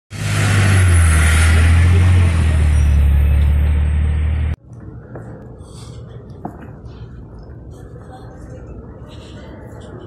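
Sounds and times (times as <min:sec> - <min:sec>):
vehicle engine drone: 0:00.1 - 0:04.6
road noise: 0:00.1 - 0:10.0.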